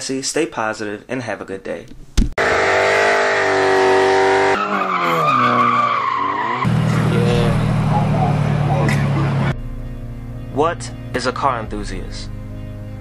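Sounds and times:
car engine drone: 0:02.4 - 0:11.0
tyres squealing: 0:03.2 - 0:07.2.

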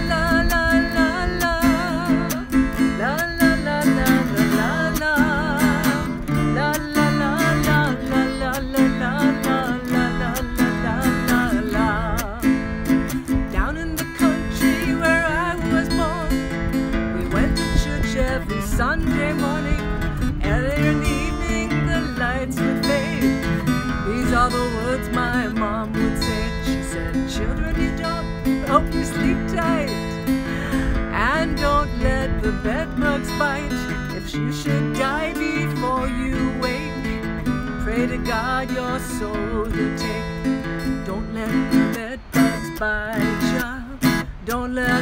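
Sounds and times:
acoustic guitar strumming: 0:00.0 - 0:45.0.

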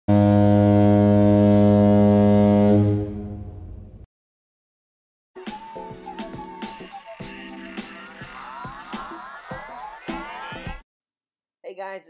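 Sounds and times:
ship's horn blast: 0:00.1 - 0:04.0.

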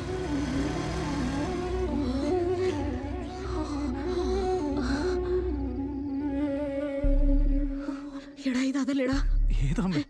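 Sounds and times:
motorcycle engine running: 0:00.0 - 0:02.6
background music: 0:00.0 - 0:10.0.

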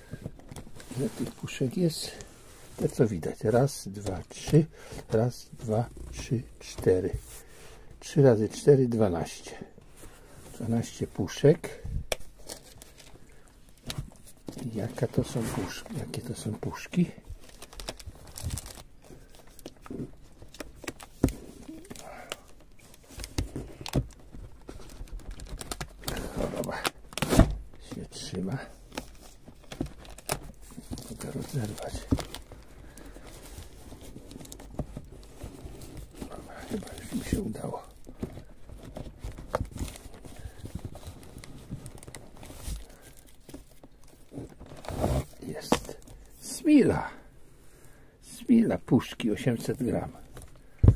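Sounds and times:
plastic shrink-wrap crinkling: 0:12.3 - 0:46.9.

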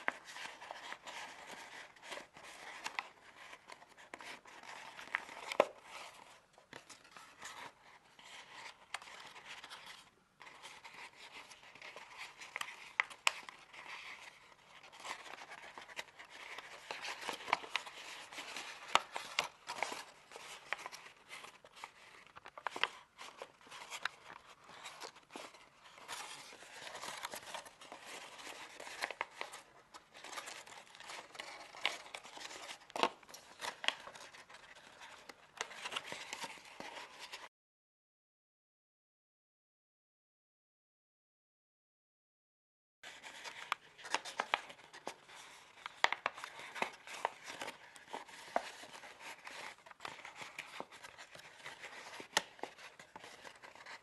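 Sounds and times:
paper rustling and crinkling: 0:00.0 - 0:37.5, 0:43.0 - 0:54.0.

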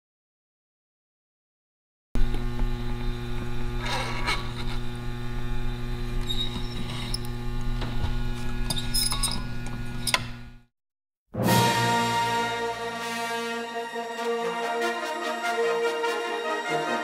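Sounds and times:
electrical mains hum: 0:02.2 - 0:10.7.

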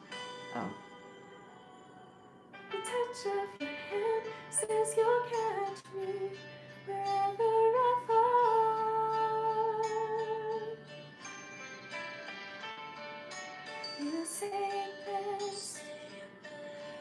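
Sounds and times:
woman singing slow song: 0:00.8 - 0:10.9, 0:14.0 - 0:17.0.

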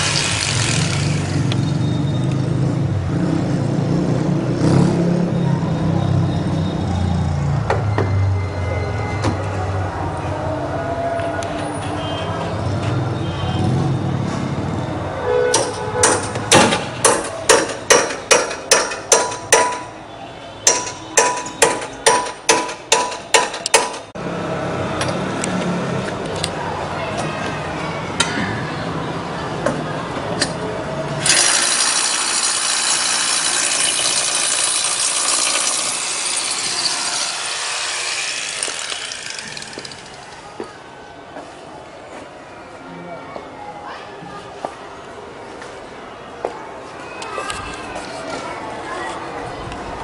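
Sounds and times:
hammer blows with metallic ring: 0:15.5 - 0:20.0, 0:20.6 - 0:24.1.

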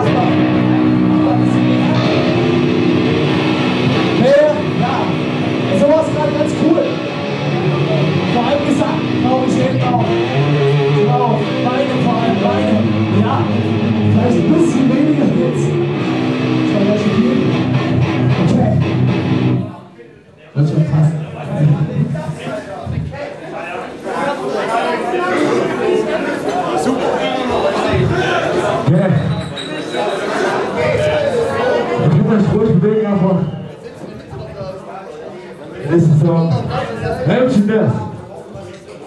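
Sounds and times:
drums: 0:00.0 - 0:19.6
electric guitars: 0:00.0 - 0:19.7.

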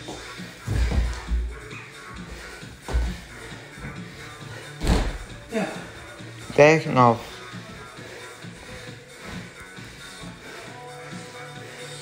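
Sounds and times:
background music: 0:00.0 - 0:12.0
thuds on wooden floor: 0:04.8 - 0:05.4.

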